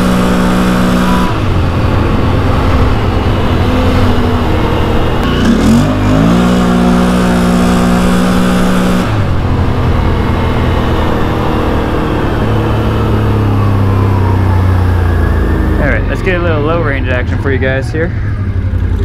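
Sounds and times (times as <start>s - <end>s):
engine revving: 0.0s - 19.0s
falling whine: 0.0s - 19.0s.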